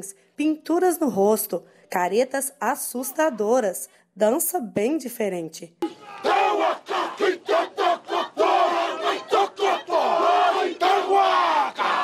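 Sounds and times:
men chanting in unison: 6.0 - 12.0.

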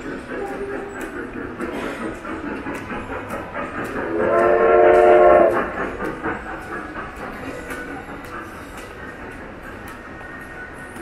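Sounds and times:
sharp clicks of train rolling: 0.0 - 11.0
train whistle: 4.1 - 5.7.

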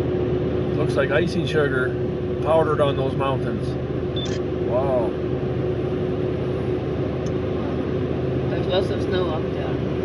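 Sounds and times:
engine hum inside car: 0.0 - 10.0.

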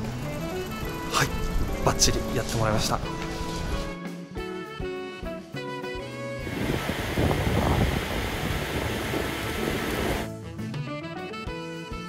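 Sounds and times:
background music: 0.0 - 12.0
heavy rain pouring: 6.5 - 10.3.

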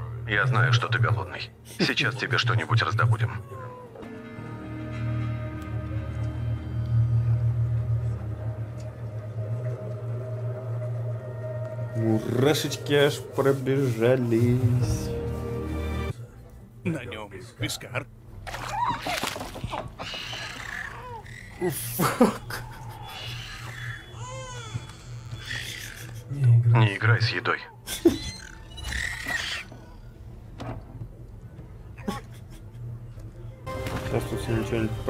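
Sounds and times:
low steady hum: 5.2 - 17.0
creature cooing squeaky calls: 18.6 - 26.2, 28.0 - 30.1.

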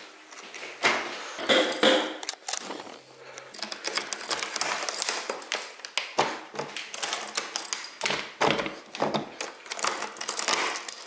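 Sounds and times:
door lock and handle jangling: 3.5 - 6.0, 6.8 - 11.0.

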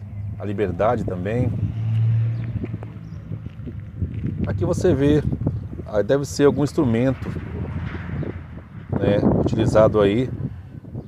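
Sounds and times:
footsteps on gravel: 1.8 - 5.5.

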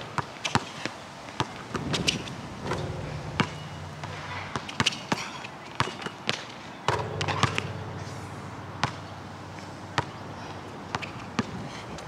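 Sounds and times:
basketball bouncing on hard court: 1.4 - 8.0, 8.8 - 9.2, 10.9 - 11.5
low steady hum: 2.4 - 5.5, 6.9 - 9.9.

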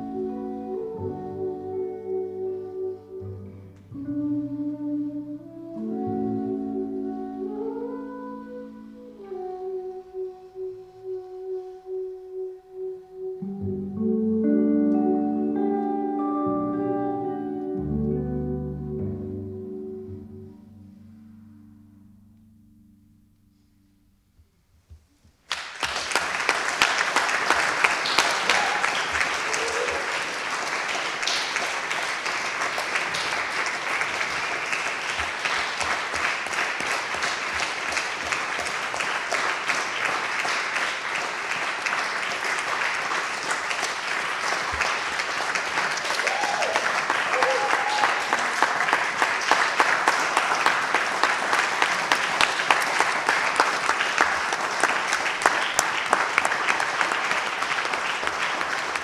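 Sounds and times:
audience applauding: 25.5 - 59.0.

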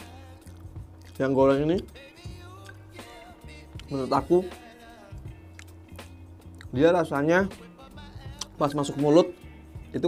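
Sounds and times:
soft background music: 0.0 - 10.0
person talking: 3.8 - 4.6, 8.3 - 10.0.

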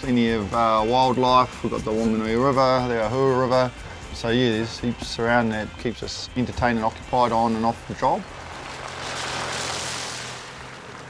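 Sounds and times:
soft rushing noise: 7.2 - 11.0.

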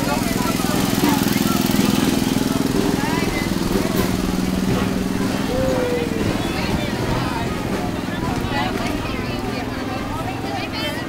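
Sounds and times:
crowd chatter: 0.0 - 11.0
small kart engine running: 0.0 - 11.0.

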